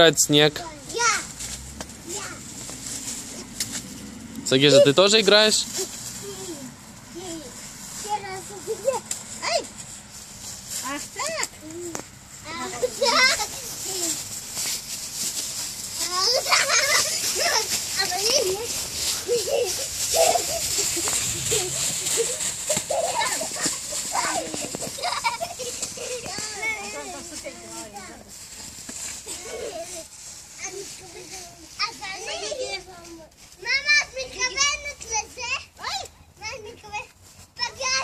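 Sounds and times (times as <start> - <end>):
children shouting and squealing: 5.7 - 9.8, 15.8 - 27.9, 29.0 - 37.0.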